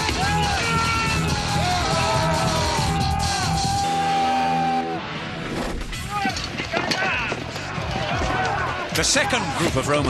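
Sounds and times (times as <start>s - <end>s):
men shouting battle cries: 0.0s - 4.9s
background music: 0.0s - 10.0s.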